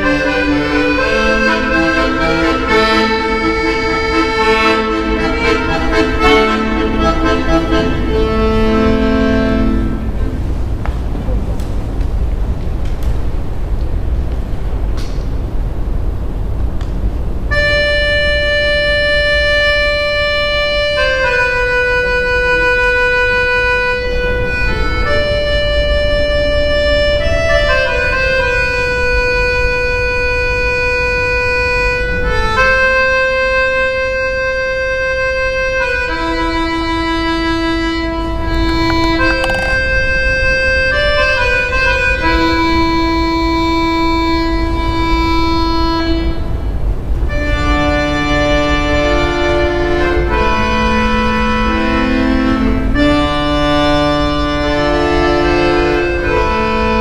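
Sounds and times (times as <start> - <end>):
accordion playing slow melody: 0.0 - 11.5, 17.5 - 57.0.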